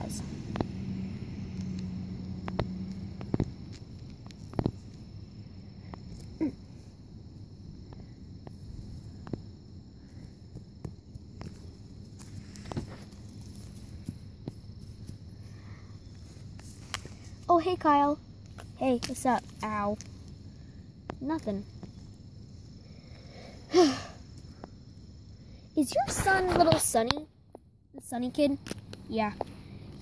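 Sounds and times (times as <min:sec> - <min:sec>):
steady low hum: 0:00.0 - 0:26.3
insects chirring: 0:00.0 - 0:30.0.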